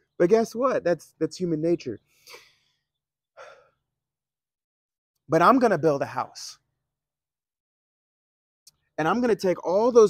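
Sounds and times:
man breathing: 0:02.1 - 0:03.8.

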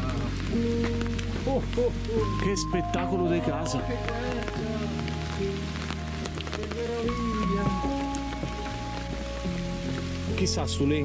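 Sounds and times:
slow held chords music: 0:00.0 - 0:11.0.

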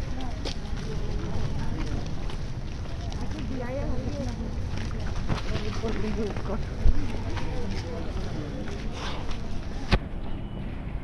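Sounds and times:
footsteps on concrete: 0:00.0 - 0:10.0
people talking: 0:00.0 - 0:10.0.

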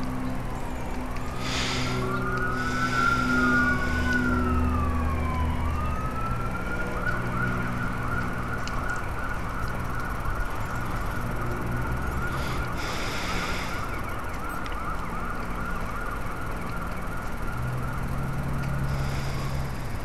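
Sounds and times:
low steady hum: 0:00.0 - 0:20.0
police sirens wailing: 0:00.0 - 0:20.0.

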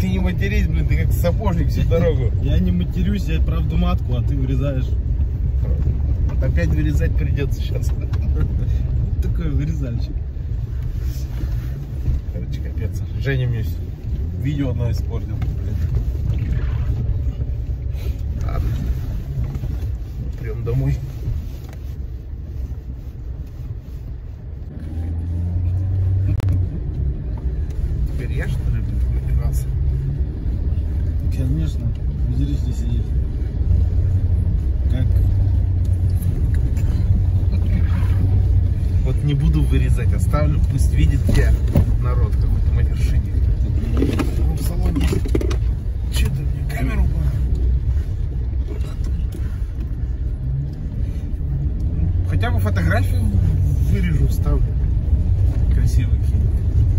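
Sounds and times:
vehicle engine and road rumble: 0:00.0 - 0:56.9.

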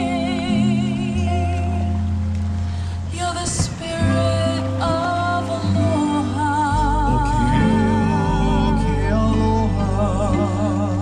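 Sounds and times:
sustained backing chords: 0:00.0 - 0:11.0.

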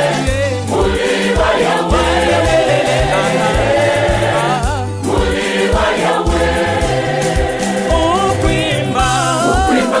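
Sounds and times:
backing music with beat: 0:00.0 - 0:10.0
mixed choir singing gospel: 0:00.0 - 0:10.0.

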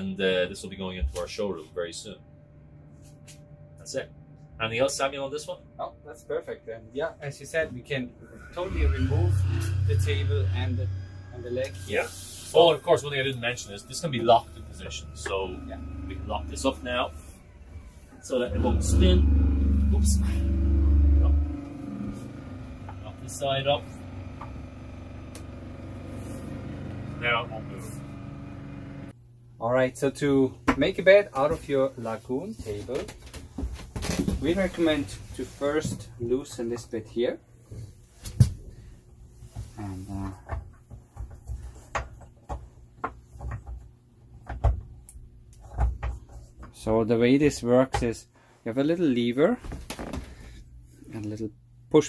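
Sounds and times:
low motor drone: 0:02.0 - 0:29.2.

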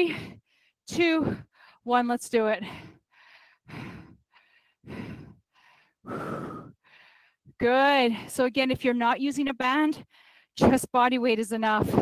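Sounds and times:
woman breathing hard: 0:00.0 - 0:01.9, 0:02.6 - 0:07.6.

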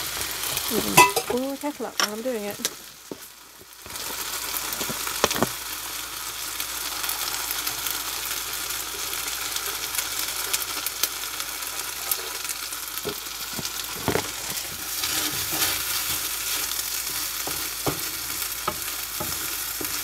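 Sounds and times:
food sizzling in a frying pan: 0:00.0 - 0:20.0.

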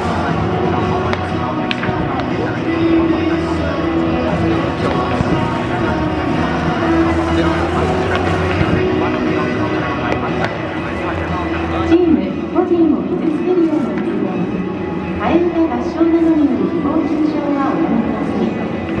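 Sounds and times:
crowd talking: 0:00.0 - 0:19.0
music over public address: 0:00.0 - 0:19.0.

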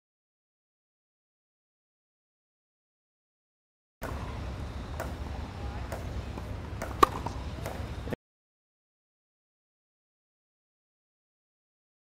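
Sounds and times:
low outdoor rumble: 0:04.0 - 0:08.2
tennis racquet hitting ball: 0:04.0 - 0:08.2.

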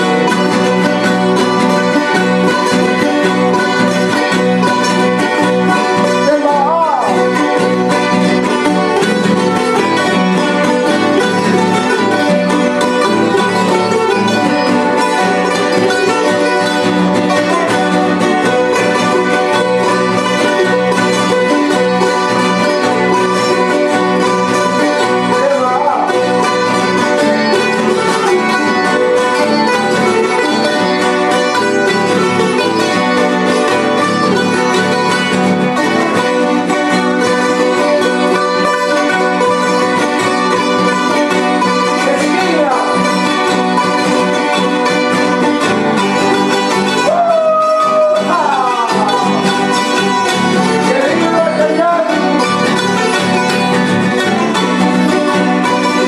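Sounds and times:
plucked string ensemble strumming: 0:00.0 - 0:56.0.

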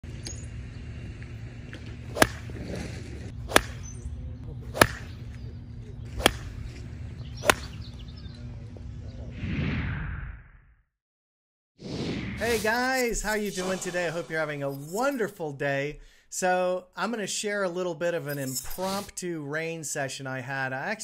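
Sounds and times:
golf club striking balls: 0:01.2 - 0:08.5
whoosh: 0:09.4 - 0:10.8, 0:11.8 - 0:14.5.

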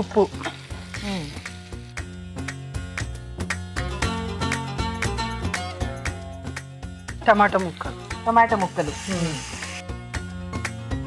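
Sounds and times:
vegetables sizzling in hot oil: 0:00.0 - 0:02.4, 0:07.4 - 0:09.9.

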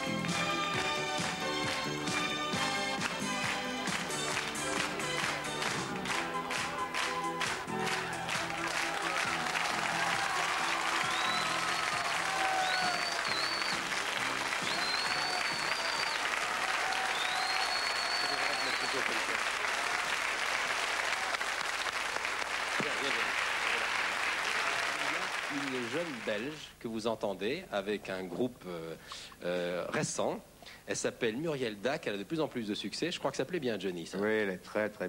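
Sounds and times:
band music: 0:00.0 - 0:16.2
studio audience applauding: 0:00.0 - 0:26.7
high whistle-like tones: 0:11.0 - 0:12.0, 0:12.6 - 0:13.9, 0:14.6 - 0:16.2, 0:17.1 - 0:19.0.

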